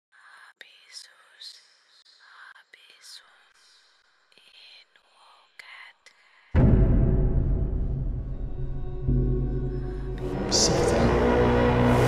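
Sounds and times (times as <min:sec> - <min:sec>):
person whispering: 0:00.1 - 0:06.5.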